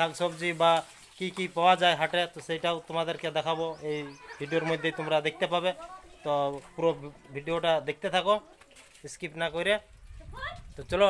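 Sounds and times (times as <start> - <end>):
man talking: 0.0 - 9.9, 10.8 - 11.0.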